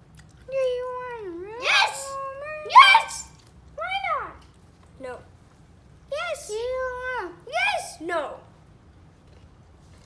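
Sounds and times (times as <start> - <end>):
child's high wordless voice: 0.5 - 5.3, 6.1 - 8.5.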